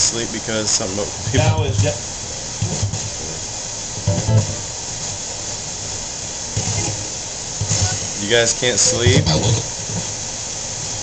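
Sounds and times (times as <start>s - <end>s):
radio static hiss: 0.0s - 11.0s
chopped radio broadcast fragments: 6.6s - 8.3s, 8.9s - 10.1s.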